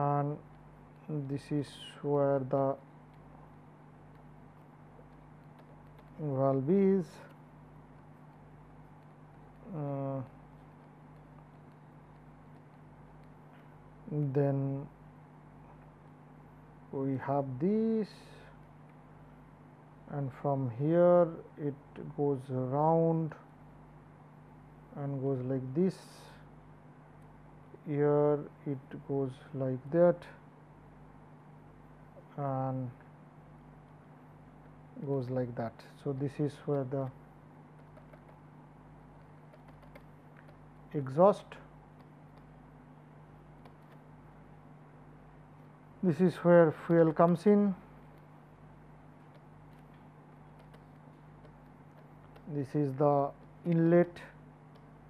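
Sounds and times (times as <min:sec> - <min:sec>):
faint electrical hum with hiss: 0:00.0 - 0:55.0
pen tapping on tablet: 0:39.5 - 0:40.6, 0:49.3 - 0:52.5.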